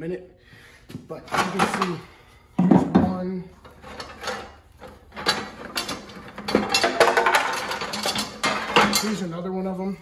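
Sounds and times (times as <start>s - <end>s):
metal hardware clanking in bucket: 2.6s - 9.3s.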